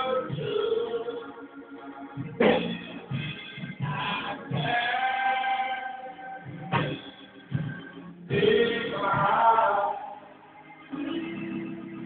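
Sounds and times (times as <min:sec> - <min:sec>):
church music with singing: 0:00.0 - 0:12.0
steady bass line: 0:00.0 - 0:12.0.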